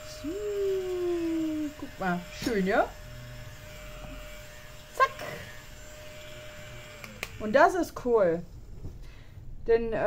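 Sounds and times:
handheld vacuum cleaner humming: 0.0s - 7.7s.

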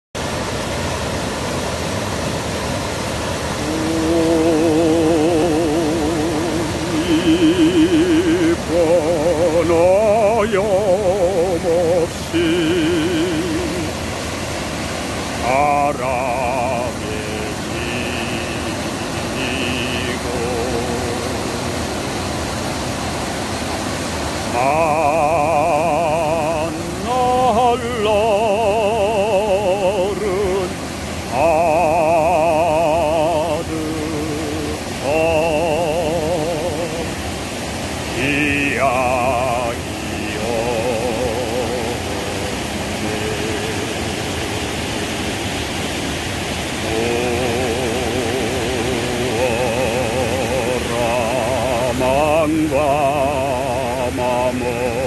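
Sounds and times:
stream rushing over rocks: 0.2s - 55.0s
art song with vibrato singing: 3.4s - 22.4s, 24.4s - 55.0s.

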